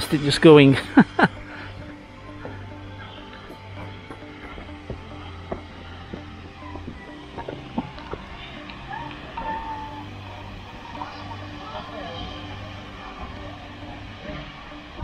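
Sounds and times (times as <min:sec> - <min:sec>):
steady low hum: 0:00.0 - 0:15.0
footsteps on gravel: 0:01.4 - 0:09.8.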